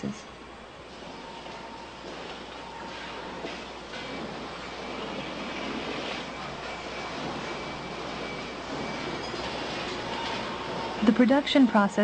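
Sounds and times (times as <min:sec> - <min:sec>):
faint hum: 0:00.0 - 0:12.0
factory machinery hiss and rumble: 0:00.2 - 0:12.0.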